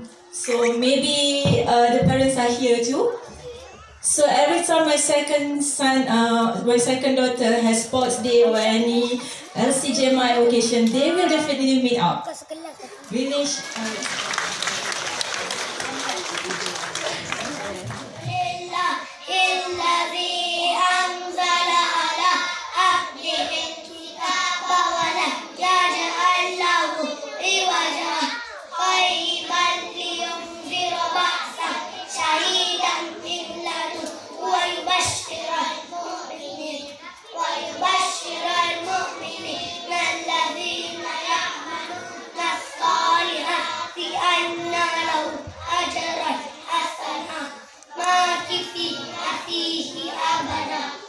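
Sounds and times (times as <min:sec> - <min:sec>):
children chanting in unison: 0:18.1 - 0:51.0.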